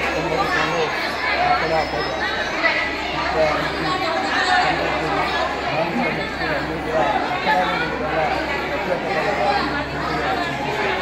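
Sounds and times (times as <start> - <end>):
people chattering: 0.0 - 11.0
man speaking into microphone: 3.2 - 10.7.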